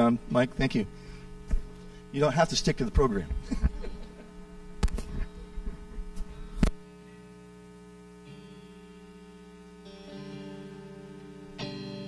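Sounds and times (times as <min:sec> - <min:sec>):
electrical hum from speakers: 0:00.0 - 0:12.0
soft keyboard chord: 0:05.3 - 0:12.0.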